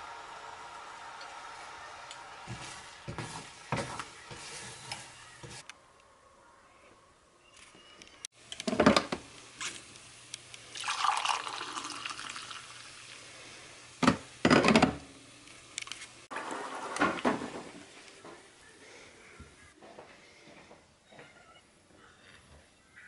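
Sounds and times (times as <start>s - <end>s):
kitchenware clunks and knocks: 8.7s - 9.2s, 14.0s - 15.0s, 16.4s - 17.9s
coffee pouring into mug: 10.6s - 13.3s.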